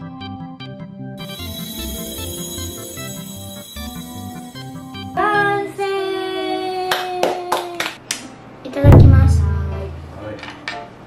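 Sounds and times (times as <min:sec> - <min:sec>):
held musical note: 0:01.2 - 0:05.5
hands clapping: 0:06.9 - 0:08.3.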